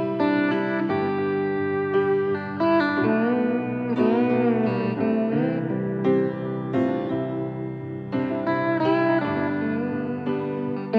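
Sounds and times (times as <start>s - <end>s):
lap steel guitar: 0.0s - 10.9s
piano: 0.0s - 10.9s.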